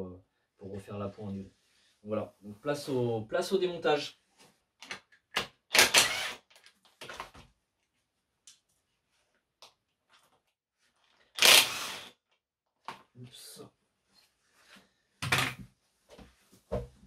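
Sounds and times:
impact driver running: 0:11.4 - 0:12.1.

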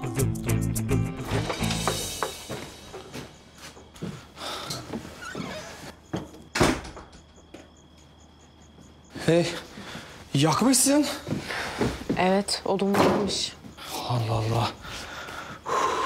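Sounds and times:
background music: 0:00.0 - 0:03.5
door banging shut: 0:06.2 - 0:07.3.

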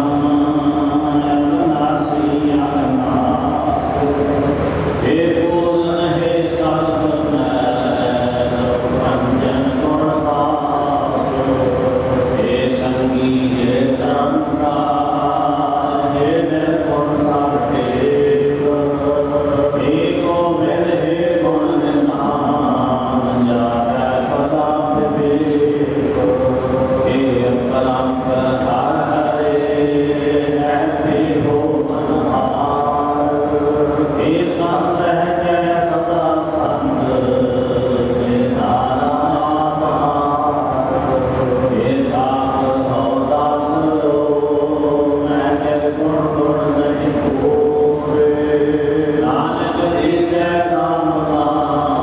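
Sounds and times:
group chanting a hymn: 0:00.0 - 0:52.0.

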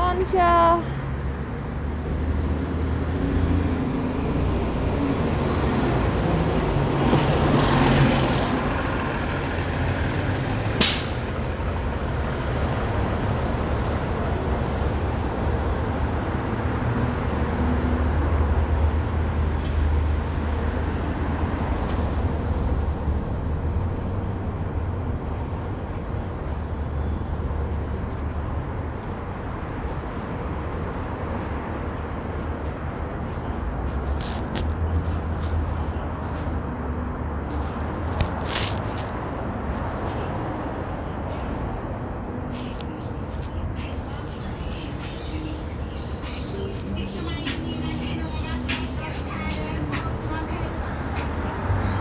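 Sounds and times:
traffic engine rumble: 0:00.0 - 0:52.0
short sharp hiss: 0:10.8 - 0:11.2.

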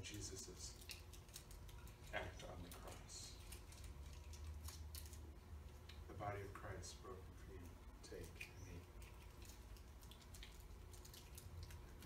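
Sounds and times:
low room hum: 0:00.0 - 0:12.0
packaging crackling clicks: 0:00.7 - 0:06.0, 0:08.2 - 0:12.0.

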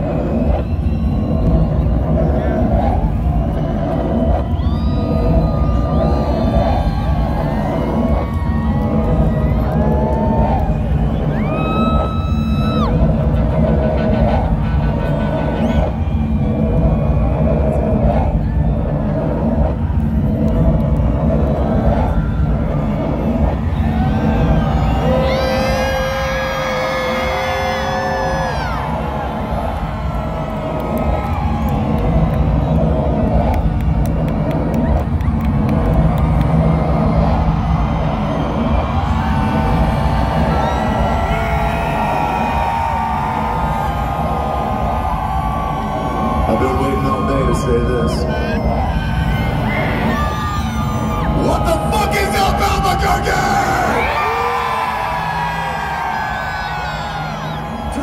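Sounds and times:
crowd cheering and screaming: 0:00.0 - 0:58.0
loud music from stage speakers: 0:00.0 - 0:58.0.

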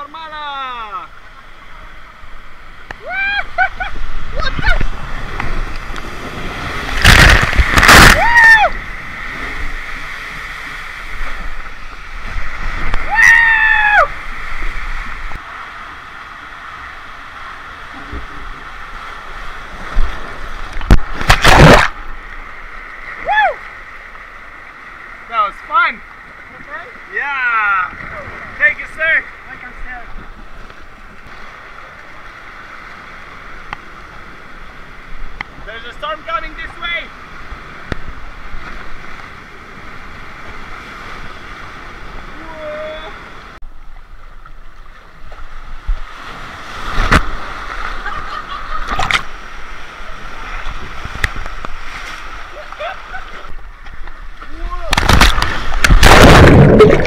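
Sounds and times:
rushing churning water: 0:00.0 - 0:57.0
water splashing: 0:00.0 - 0:57.0.

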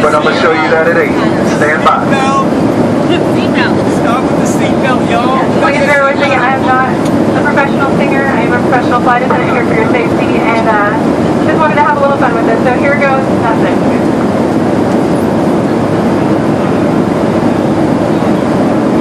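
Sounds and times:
airliner cabin engine rumble: 0:00.0 - 0:19.0.

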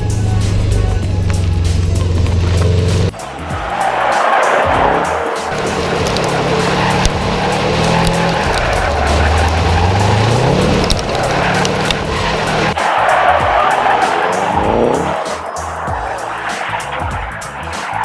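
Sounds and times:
background music: 0:00.0 - 0:18.0
tyres squealing on asphalt: 0:00.0 - 0:18.0
car engine revving hard: 0:00.2 - 0:17.8.

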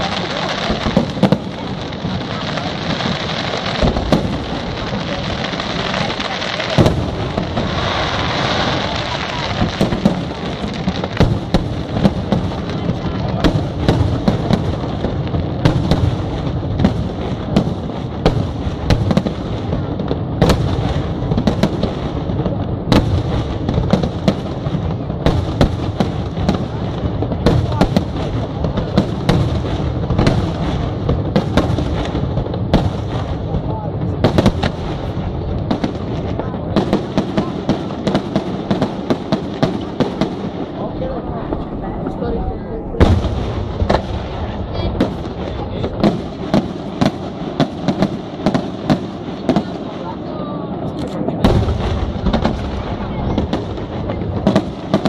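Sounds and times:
fireworks shell bursts rumbling: 0:00.0 - 0:19.4
crackling fireworks stars: 0:00.0 - 0:55.0
sharp firework reports: 0:00.0 - 0:55.0.

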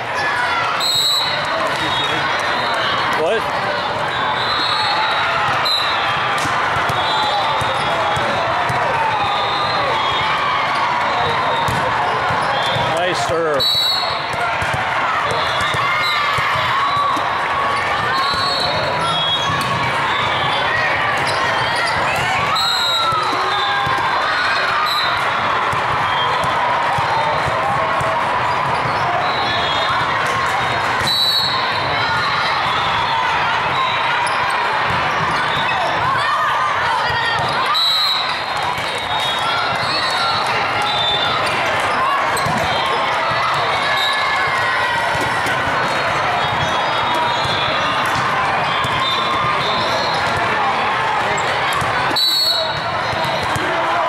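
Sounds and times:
many voices talking and calling: 0:00.0 - 0:54.0
shoes squeaking on court floor: 0:28.4 - 0:29.8.

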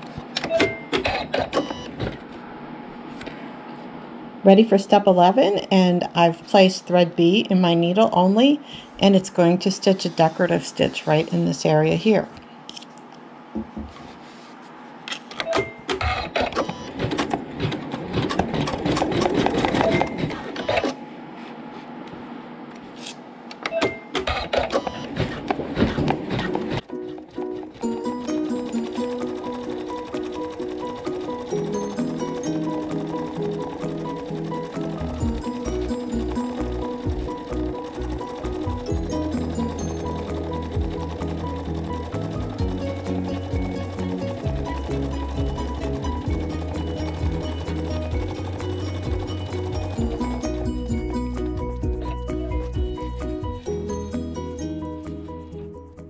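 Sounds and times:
embroidery machine stitching: 0:00.6 - 0:02.2, 0:15.9 - 0:21.0, 0:24.1 - 0:54.4
background music with steady beat: 0:26.4 - 0:56.0.

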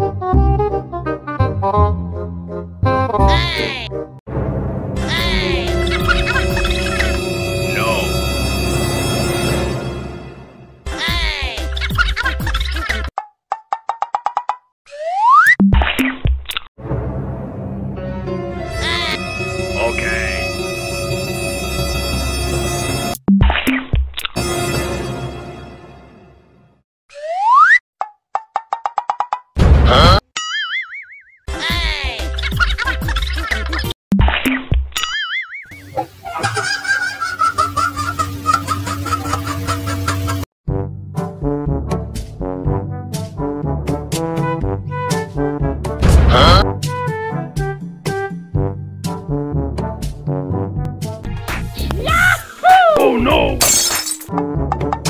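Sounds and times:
background music: 0:00.0 - 0:13.1, 0:16.8 - 0:23.2, 0:40.0 - 0:55.0
cartoon honk: 0:03.1 - 0:03.9, 0:05.0 - 0:08.1, 0:18.7 - 0:20.7, 0:46.3 - 0:46.7
background music melody: 0:04.9 - 0:11.8, 0:17.9 - 0:23.2
low thump: 0:46.0 - 0:46.5.

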